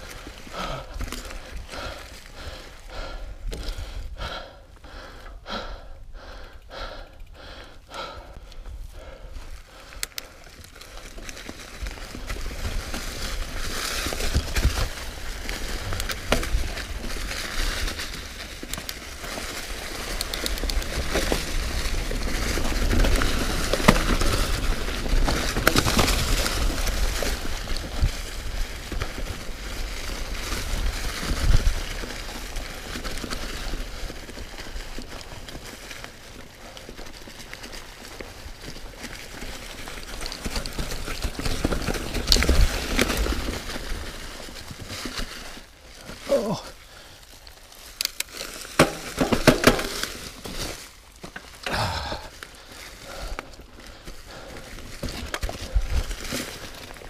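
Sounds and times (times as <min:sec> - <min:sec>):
bike tyres crunching leaves: 0:00.0 - 0:57.0.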